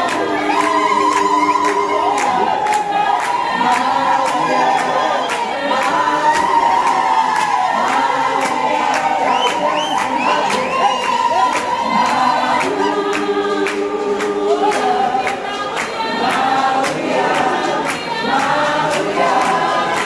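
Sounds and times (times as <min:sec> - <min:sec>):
choir singing gospel: 0:00.0 - 0:20.0
hand clapping in time: 0:00.0 - 0:20.0.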